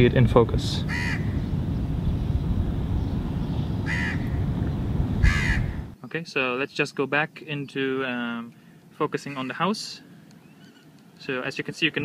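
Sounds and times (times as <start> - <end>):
low background rumble: 0.0 - 6.0
bird calling: 0.8 - 6.0, 8.6 - 11.2.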